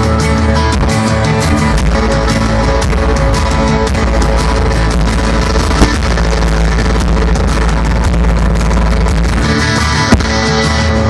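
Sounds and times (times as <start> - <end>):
rock band playing live: 0.0 - 11.0
sharp drum hit: 5.6 - 6.3.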